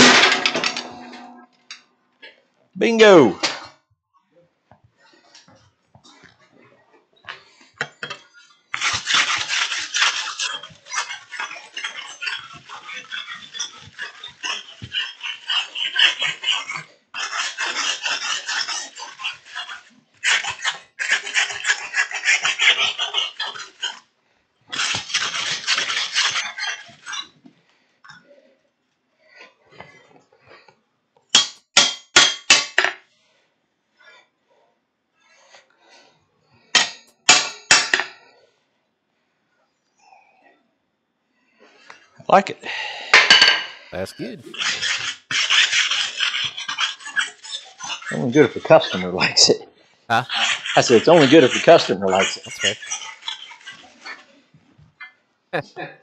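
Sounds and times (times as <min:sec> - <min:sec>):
hammer blows on anvil: 0:00.0 - 0:01.4
metal scraping over hot steel: 0:00.0 - 0:01.5.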